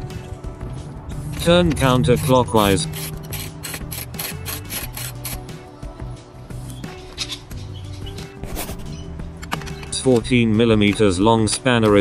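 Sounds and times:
background music: 0.0s - 12.0s
ratchet wrench clicking: 2.2s - 5.5s.

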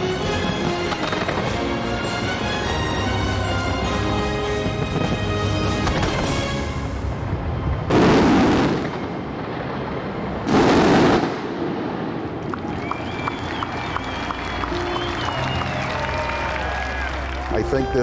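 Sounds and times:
show music: 0.0s - 7.2s, 14.0s - 18.0s
firework crackling: 0.0s - 17.9s.

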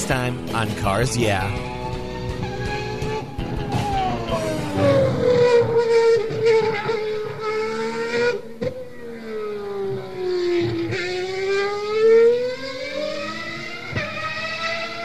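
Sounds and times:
car engine slowing and speeding up: 0.0s - 15.0s.

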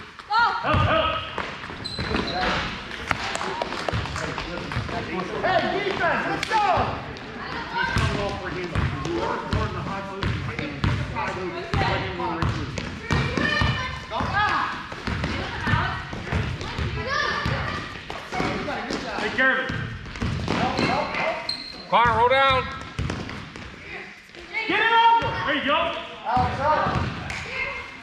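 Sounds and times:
basketball bouncing on hardwood floor: 11.7s - 17.8s, 19.7s - 21.0s, 22.8s - 23.7s.

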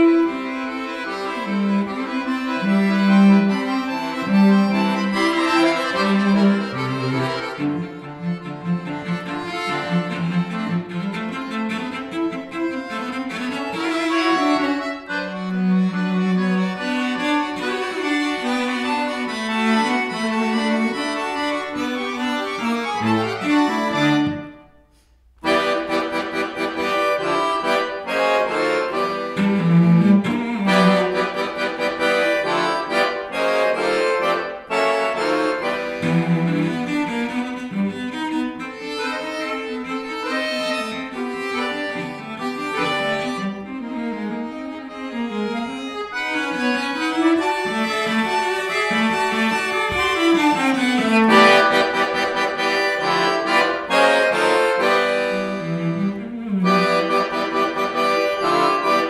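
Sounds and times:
accordion chords: 0.0s - 59.0s
bowed cello notes: 0.0s - 59.0s.

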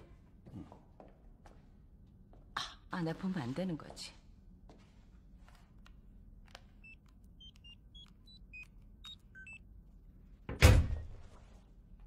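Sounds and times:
security keypad beeping: 6.8s - 9.7s.

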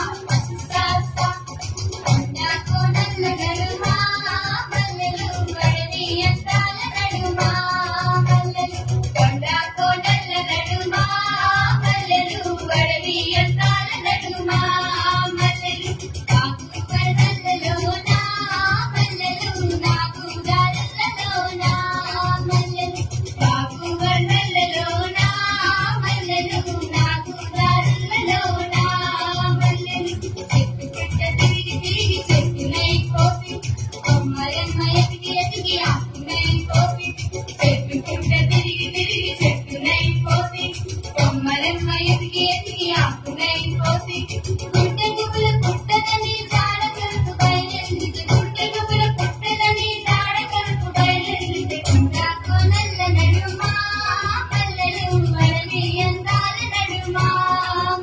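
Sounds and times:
steady drum beat: 0.0s - 58.0s.

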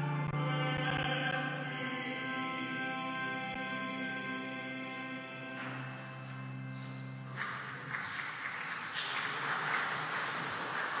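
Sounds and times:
held music chord: 0.0s - 7.4s
congregation talking and moving: 4.9s - 11.0s.

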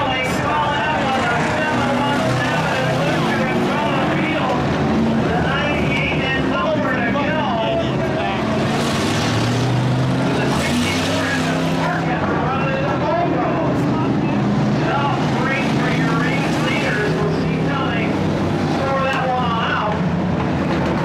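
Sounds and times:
race car engines passing: 0.0s - 21.0s.

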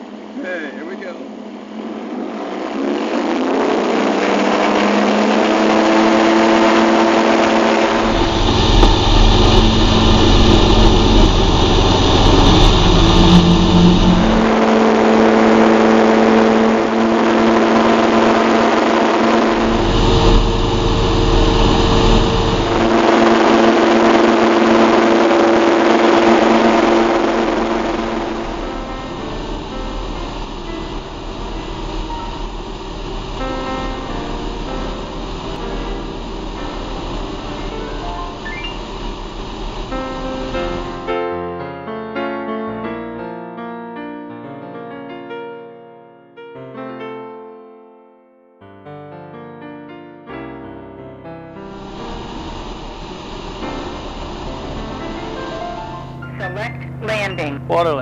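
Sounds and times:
light aircraft engine and propeller: 0.0s - 41.3s, 51.6s - 58.0s
heavy low rumble: 6.4s - 41.3s, 51.6s - 58.0s.

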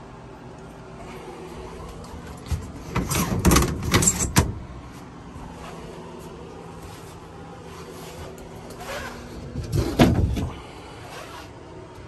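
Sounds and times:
pleated shade rattling: 1.6s - 11.8s.

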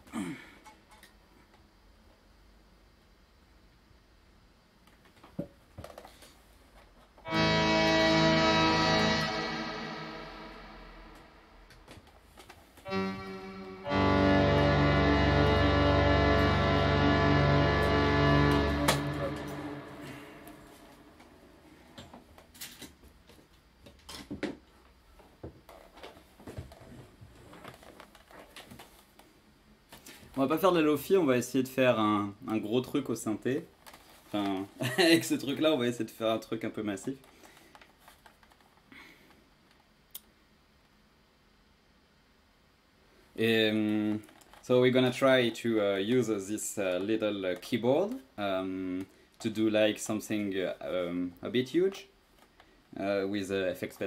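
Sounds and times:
synthesizer held notes: 7.3s - 11.9s, 12.9s - 21.6s.

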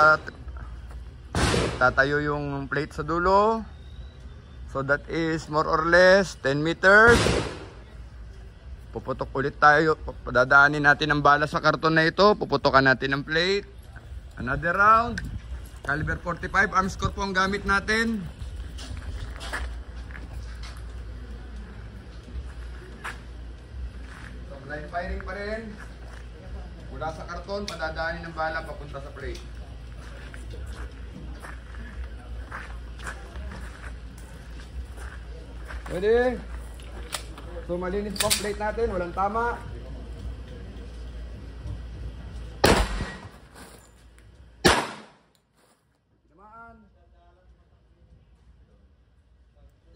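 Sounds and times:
pistol shots with echo: 1.3s - 2.0s, 7.0s - 7.8s, 42.6s - 43.4s, 44.6s - 45.3s
wind rumble on microphone: 14.0s - 20.5s.

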